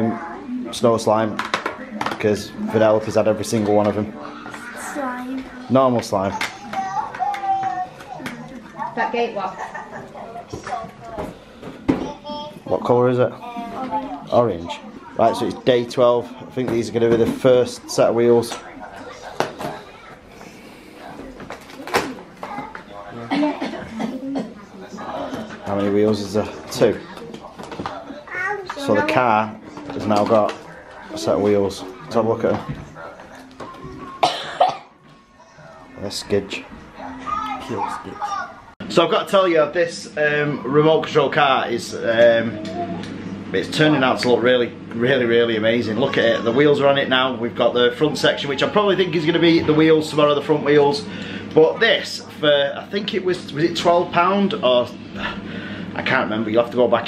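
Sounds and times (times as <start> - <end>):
faint background music: 0.0 - 57.0
quiet talking: 18.4 - 25.8
person coughing: 23.3 - 24.5, 34.2 - 34.9.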